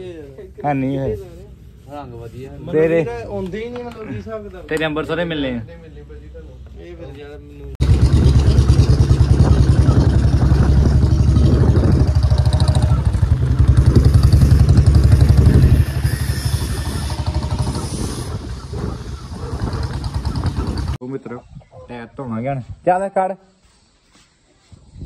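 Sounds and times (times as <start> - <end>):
motorcycle engine running: 7.8 - 21.0.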